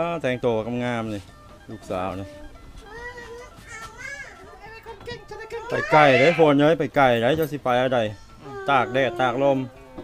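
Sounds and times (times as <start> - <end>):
girl crying: 8.4 - 10.0.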